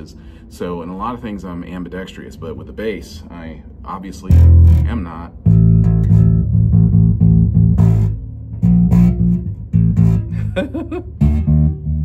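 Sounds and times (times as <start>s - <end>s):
bass guitar plucked low notes: 4.1s - 12.0s.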